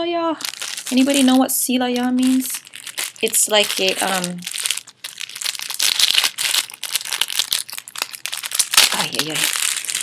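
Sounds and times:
packaging crinkling: 0.4s - 10.0s.

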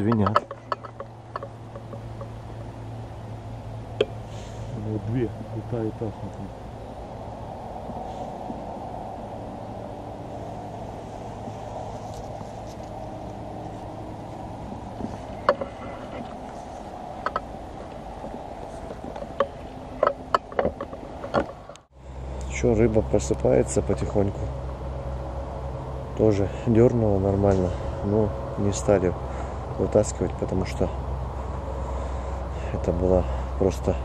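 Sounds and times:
outdoor background noise: 0.0s - 34.0s.

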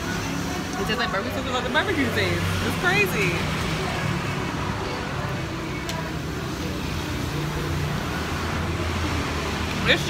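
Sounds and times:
road traffic with engine hum: 0.0s - 10.0s.

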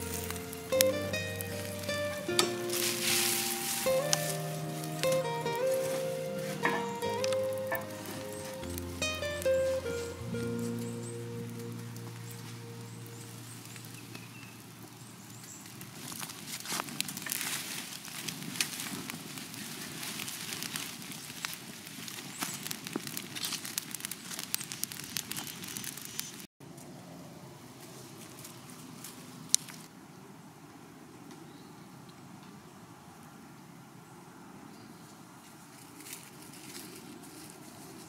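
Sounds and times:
held music notes: 0.0s - 14.4s
leafy vines rustling and snapping: 0.0s - 26.5s, 27.8s - 30.0s
wood fire crackling: 0.0s - 26.5s.

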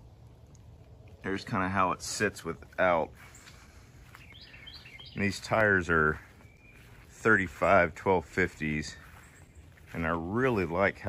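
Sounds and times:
outdoor background noise: 0.0s - 11.0s
faint bird chirps: 3.2s - 7.2s, 9.0s - 9.9s.

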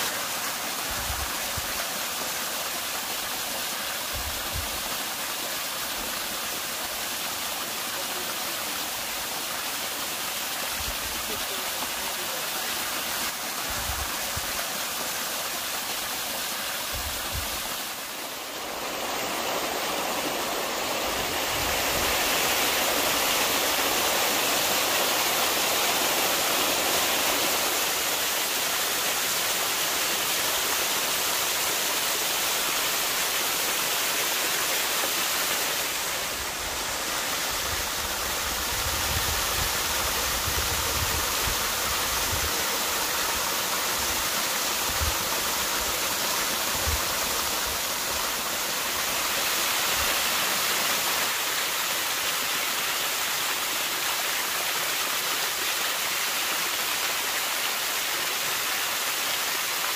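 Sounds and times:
waterfall rushing and splashing: 0.0s - 59.9s.

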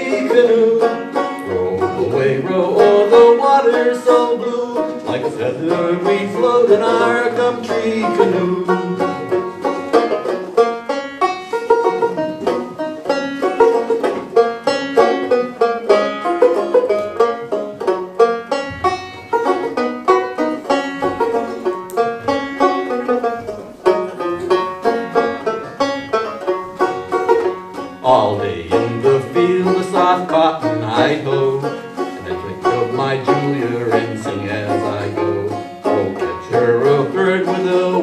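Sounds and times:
solo banjo playing: 0.0s - 38.0s.

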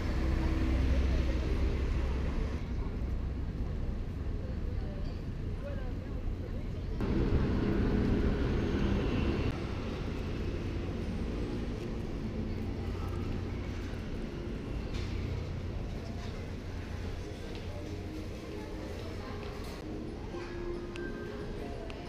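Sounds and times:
indistinct voices of passers-by: 0.0s - 22.0s.

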